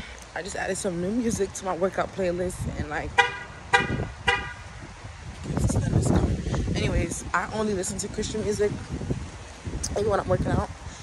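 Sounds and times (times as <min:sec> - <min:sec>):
wind rumble on microphone: 0:00.0 - 0:11.0
microphone handling noise: 0:02.6 - 0:10.9
car horn toot: 0:03.2 - 0:04.7.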